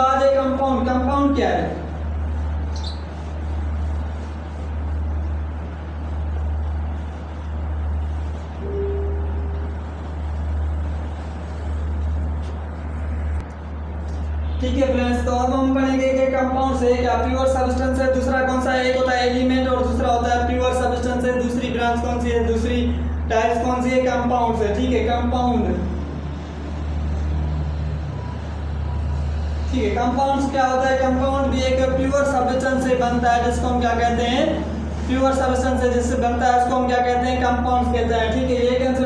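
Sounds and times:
low rumble with hiss: 0:00.0 - 0:39.0
steady low hum: 0:00.0 - 0:39.0.

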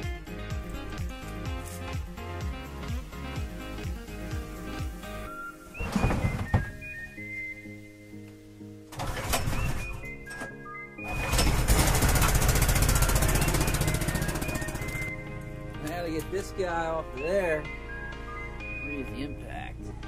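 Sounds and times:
background music: 0:00.0 - 0:20.0
small gasoline engine running: 0:11.2 - 0:15.2.

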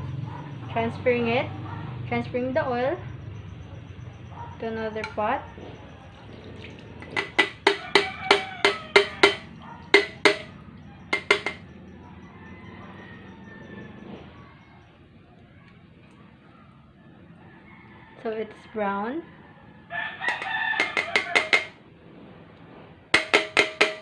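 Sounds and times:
metal pot clinking on strainer: 0:06.7 - 0:10.5, 0:11.2 - 0:11.6, 0:20.3 - 0:21.8, 0:23.2 - 0:24.0.

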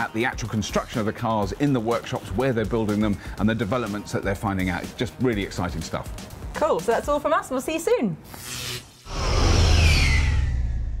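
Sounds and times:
high whine gliding downward: 0:09.1 - 0:11.0
whoosh with deep rumble: 0:09.1 - 0:11.0.

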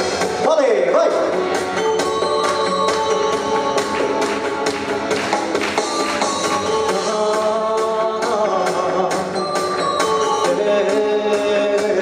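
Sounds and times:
instrumental pop music with steady beat: 0:00.0 - 0:12.0.

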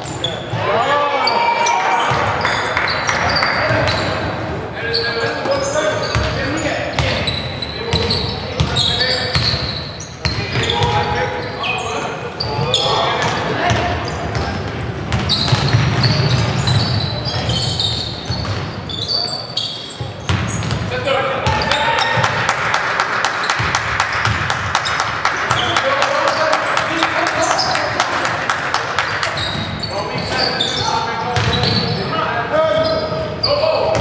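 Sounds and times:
shoe squeaks: 0:00.0 - 0:21.8, 0:23.4 - 0:28.2, 0:29.0 - 0:34.0
crowd noise: 0:00.0 - 0:34.0
ball bouncing on wooden court: 0:13.2 - 0:16.9, 0:20.2 - 0:22.4, 0:23.4 - 0:25.8, 0:31.4 - 0:31.8.

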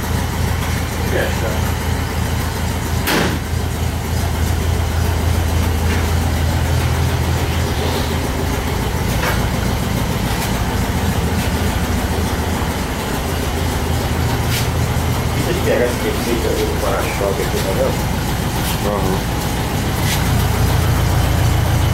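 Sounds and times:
engine idling: 0:00.0 - 0:21.9
brief knock: 0:03.0 - 0:03.4.

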